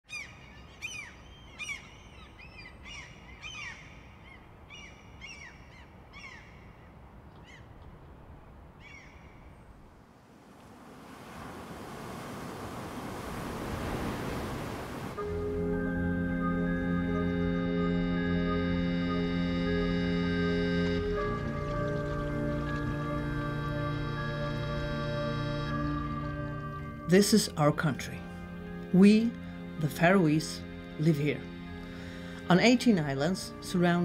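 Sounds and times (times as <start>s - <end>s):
birds calling: 0.1s - 7.8s, 8.8s - 9.9s, 16.7s - 27.5s
organ-like music chords: 15.2s - 34.0s.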